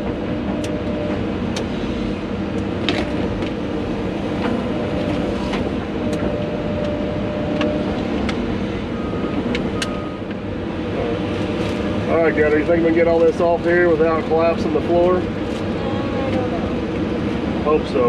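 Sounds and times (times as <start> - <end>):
excavator engine and hydraulics: 0.0 - 18.0.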